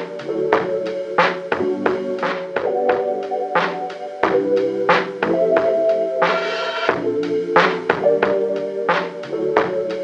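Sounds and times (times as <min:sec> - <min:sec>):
held chords over drum beat: 0:00.0 - 0:10.0.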